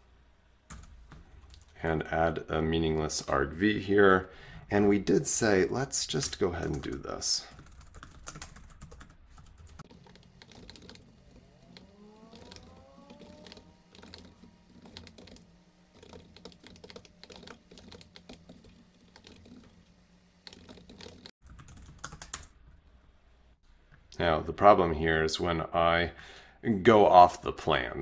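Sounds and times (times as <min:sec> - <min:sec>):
computer keyboard typing: 0:06.3 - 0:19.7, 0:20.4 - 0:22.5.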